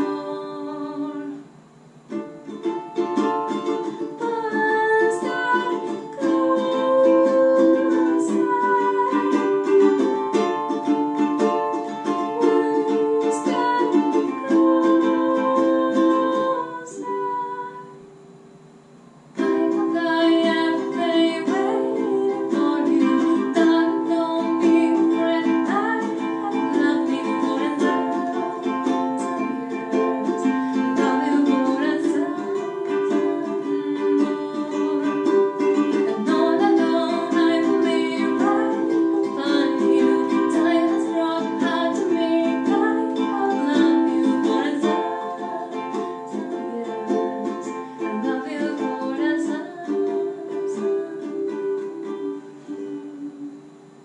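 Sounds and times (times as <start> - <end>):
ukulele strummed: 0.0 - 54.0.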